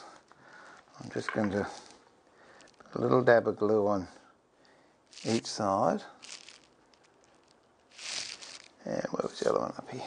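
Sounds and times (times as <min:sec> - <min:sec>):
faint crinkly rustles: 0:00.0 - 0:10.0.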